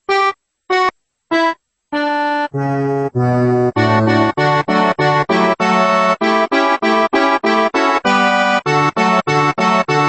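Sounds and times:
accordion chords: 0:00.0 - 0:10.0.

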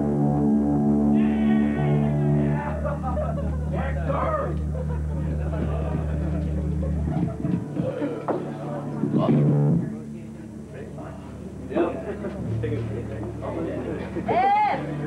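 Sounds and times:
electric guitar and bass chord: 0:00.0 - 0:10.5
people shouting: 0:01.2 - 0:03.0.

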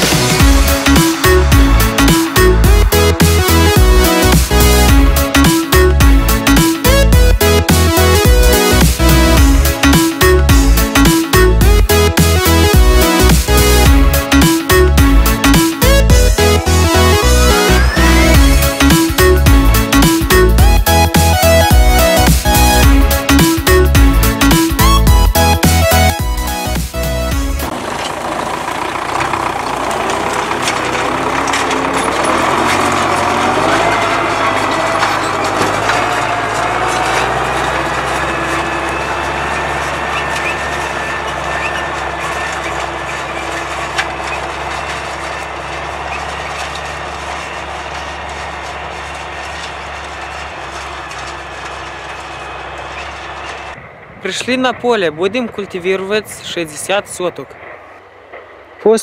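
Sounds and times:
music: 0:00.0 - 0:27.7
tractor diesel engine running: 0:00.0 - 0:59.0.

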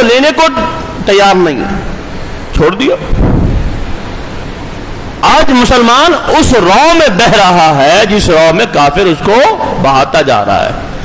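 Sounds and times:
steady loud hiss: 0:00.0 - 0:11.0
low rumble: 0:03.1 - 0:04.0.

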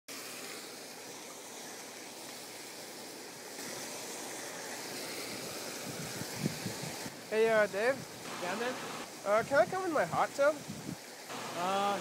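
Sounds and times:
hot tub jets bubbling: 0:00.1 - 0:12.0.

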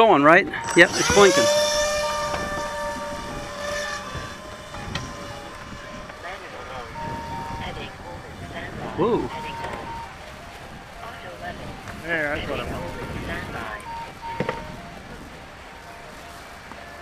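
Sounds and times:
electric propeller motor whine: 0:00.0 - 0:17.0.

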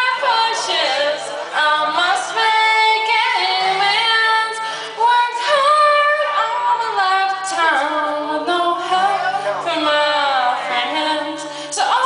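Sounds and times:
woman singing a cappella: 0:00.0 - 0:12.0.

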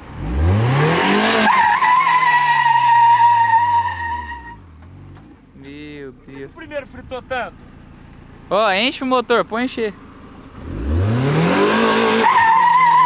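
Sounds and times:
car engine revving: 0:00.0 - 0:13.0
tyres squealing: 0:01.4 - 0:04.6, 0:12.0 - 0:13.0
people talking: 0:05.6 - 0:07.6, 0:08.5 - 0:10.0.

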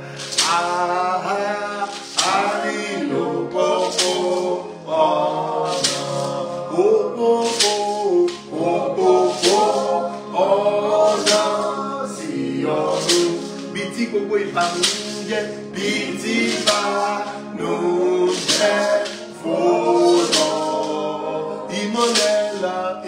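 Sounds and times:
man singing hymn: 0:00.0 - 0:23.0
sustained backing tone: 0:00.0 - 0:23.0
sharp percussive hits: 0:00.2 - 0:03.1, 0:03.7 - 0:04.6, 0:05.6 - 0:06.4, 0:07.4 - 0:10.3, 0:11.0 - 0:11.9, 0:12.8 - 0:13.7, 0:14.5 - 0:21.0, 0:22.0 - 0:22.7.

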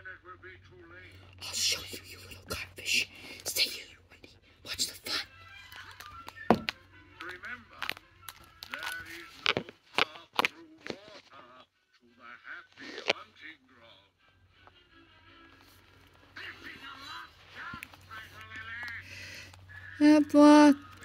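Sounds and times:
background music: 0:01.1 - 0:09.8.

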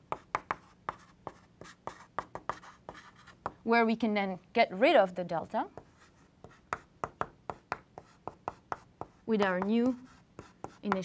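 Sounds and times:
chalk tapping on blackboard: 0:00.0 - 0:03.6, 0:05.8 - 0:11.0.

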